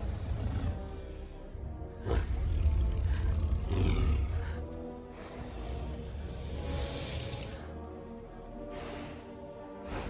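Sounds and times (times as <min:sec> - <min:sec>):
orchestral film score: 0:00.0 - 0:10.0.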